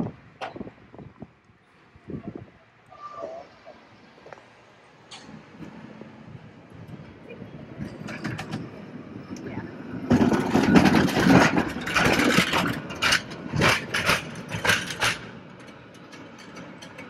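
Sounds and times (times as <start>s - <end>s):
cable car rumbling and rattling: 0.0s - 17.0s.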